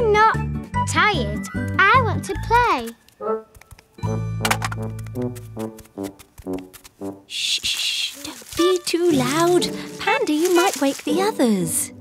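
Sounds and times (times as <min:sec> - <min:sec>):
high-pitched cartoon voice: 0:07.4 - 0:09.7.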